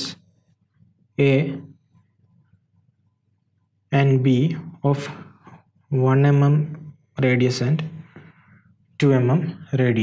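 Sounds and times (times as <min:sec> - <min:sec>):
man speaking: 0:00.0 - 0:00.2, 0:01.2 - 0:01.8, 0:03.9 - 0:08.1, 0:09.0 - 0:10.0
faint low room hum: 0:00.0 - 0:10.0.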